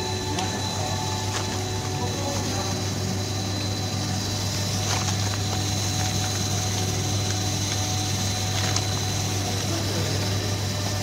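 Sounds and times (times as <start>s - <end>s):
high whine: 0.0s - 11.0s
machinery motor hum: 0.0s - 11.0s.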